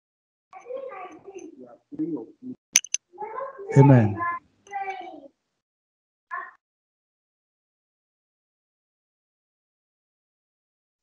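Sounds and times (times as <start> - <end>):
compressed voices over video call: 0.6 - 5.3
short sharp clicks: 2.8 - 3.0.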